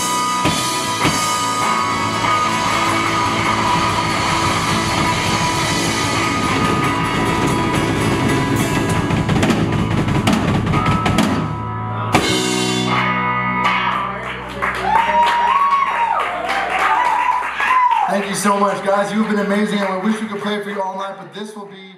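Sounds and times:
country band playing: 0.0s - 21.6s.

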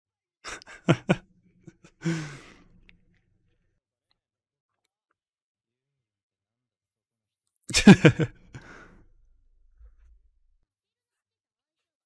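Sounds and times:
man sighing: 2.0s - 2.7s.

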